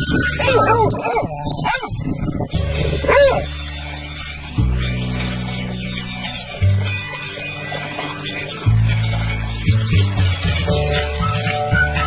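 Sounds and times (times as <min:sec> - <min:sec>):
background music with bass: 0:00.0 - 0:12.0
dog barking: 0:03.0 - 0:03.5.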